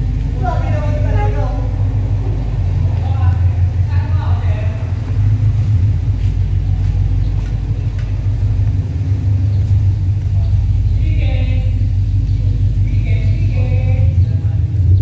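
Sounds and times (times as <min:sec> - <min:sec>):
car engine idling: 0:00.0 - 0:15.0.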